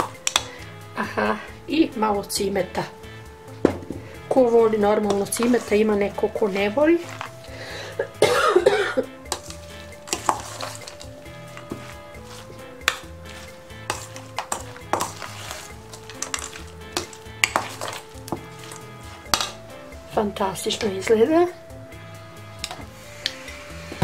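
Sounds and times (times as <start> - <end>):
spoon stirring wet mixture: 0.0 - 0.8, 3.5 - 8.2, 9.1 - 21.1
soft background music: 0.0 - 24.0
spoon clinking on metal bowl: 9.3 - 19.6.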